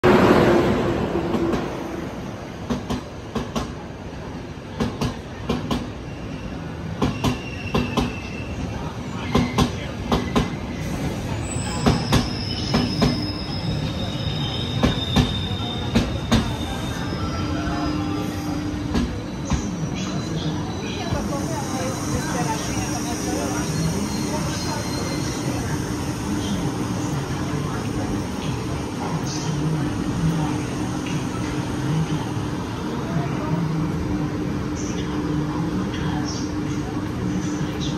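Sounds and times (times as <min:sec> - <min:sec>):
electric locomotive rolling past: 0:00.0 - 0:37.9
train coaches rumbling: 0:00.0 - 0:37.9
wheel and brake squeals: 0:06.0 - 0:08.7, 0:11.4 - 0:21.1.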